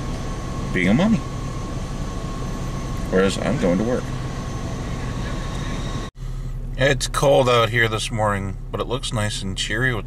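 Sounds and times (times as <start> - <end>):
car engine running: 0.0 - 10.0
car heater fan blowing: 0.0 - 10.0
faint steady whine: 0.0 - 10.0.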